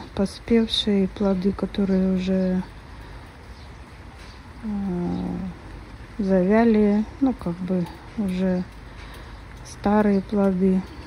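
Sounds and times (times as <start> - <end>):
woman speaking: 0.0 - 2.7, 4.6 - 5.6, 6.2 - 8.7, 9.6 - 11.0.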